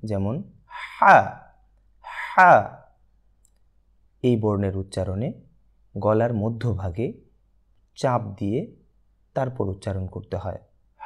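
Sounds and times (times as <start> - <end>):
person pronouncing a breathy ha: 0.7 - 1.3, 2.0 - 2.7.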